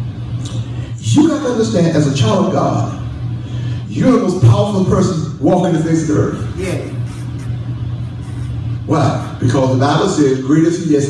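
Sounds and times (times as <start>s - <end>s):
steady low hum: 0.0s - 11.0s
person speaking: 6.5s - 9.6s.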